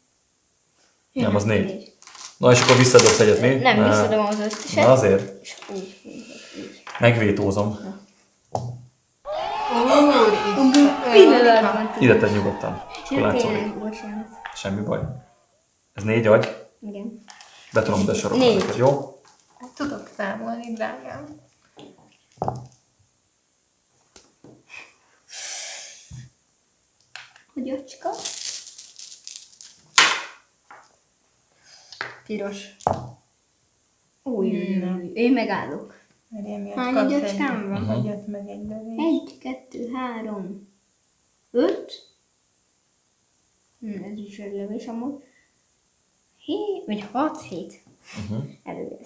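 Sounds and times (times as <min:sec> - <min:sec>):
dice rattling: 0:02.0 - 0:03.4
studio audience reaction: 0:09.3 - 0:15.6.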